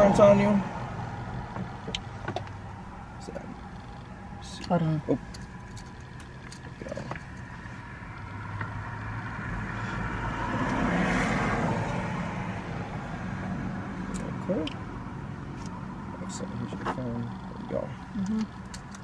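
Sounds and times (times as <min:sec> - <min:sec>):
road vehicle passing: 0:00.0 - 0:19.0.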